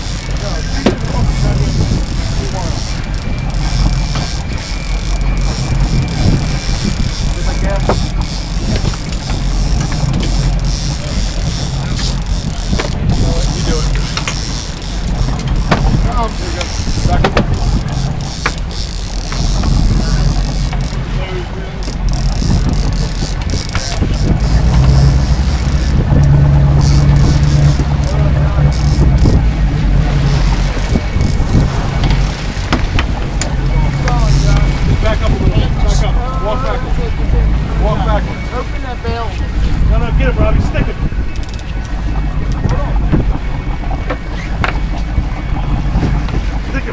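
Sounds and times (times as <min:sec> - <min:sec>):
wind hiss: 0:00.0 - 0:36.0
boat engines droning: 0:00.0 - 0:46.9
rushing water: 0:00.0 - 0:46.9
voices calling out: 0:00.0 - 0:46.9.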